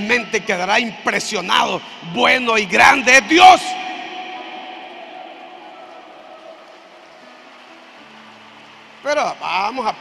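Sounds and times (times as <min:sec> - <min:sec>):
soft sustained background music: 0:00.0 - 0:10.0.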